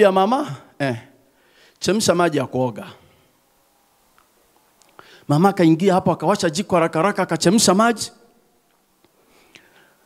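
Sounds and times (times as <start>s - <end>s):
man's amplified speech: 0.0s - 1.1s, 1.8s - 3.1s, 5.3s - 8.2s.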